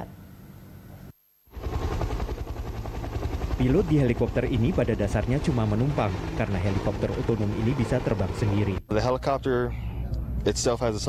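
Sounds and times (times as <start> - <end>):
helicopter rotor and engine: 1.5 - 11.0.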